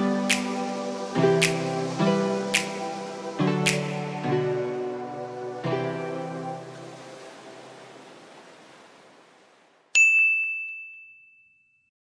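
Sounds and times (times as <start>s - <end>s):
background music: 0.0s - 8.1s
bright bell ding: 10.0s - 11.9s.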